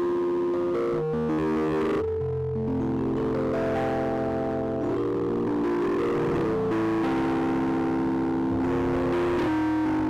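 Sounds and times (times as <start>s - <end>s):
keyboard playing sustained chords: 0.0s - 10.0s.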